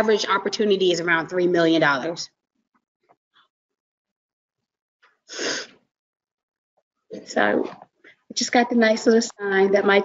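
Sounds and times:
person sneezing: 5.3s - 5.7s.

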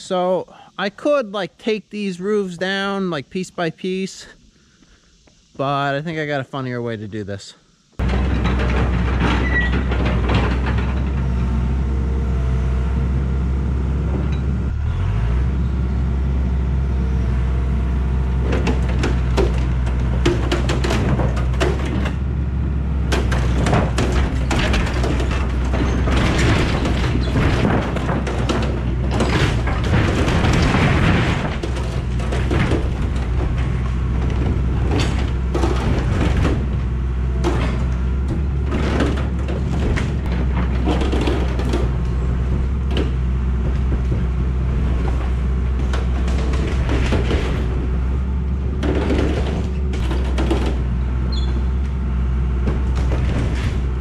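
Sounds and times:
corrugated metal creaking and crashing: 8.0s - 12.6s, 18.2s - 54.0s
excavator engine running: 8.0s - 54.0s.

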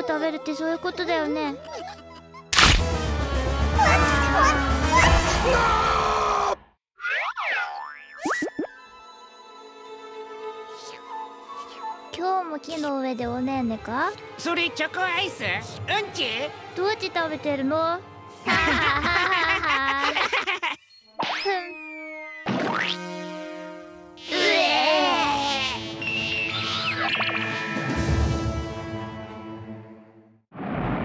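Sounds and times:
cartoon boing sound effects: 7.0s - 8.8s, 22.4s - 23.1s.

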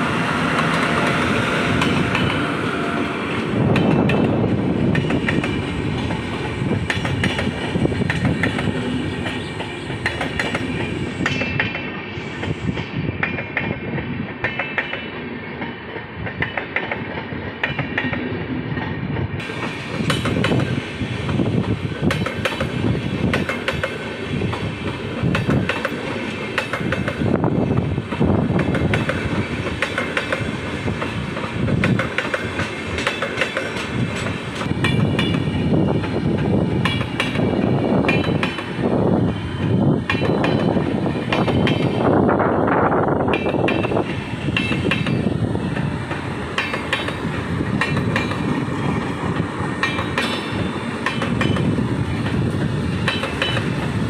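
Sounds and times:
train rolling rumble: 0.0s - 54.0s
train wheels clattering over rail joints: 0.2s - 42.4s, 43.0s - 54.0s.

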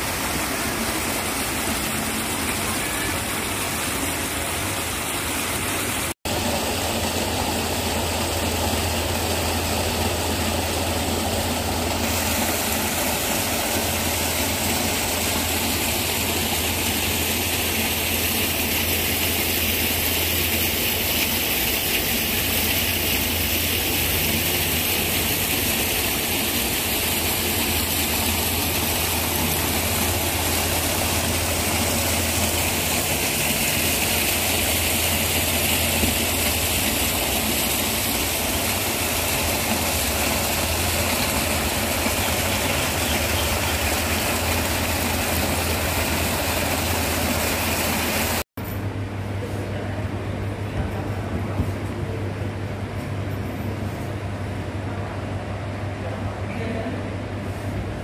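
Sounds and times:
loud machine hum: 0.0s - 50.6s.

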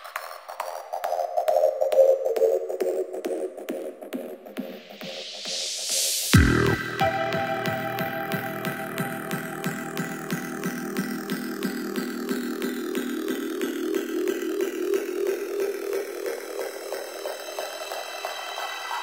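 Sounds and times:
held synth tones: 6.4s - 10.3s.

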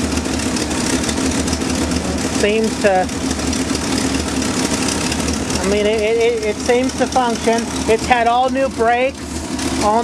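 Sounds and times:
pickup engine idling: 0.0s - 10.0s.

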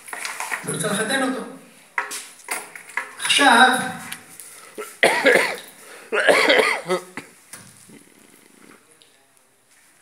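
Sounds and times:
person coughing: 4.8s - 7.2s.

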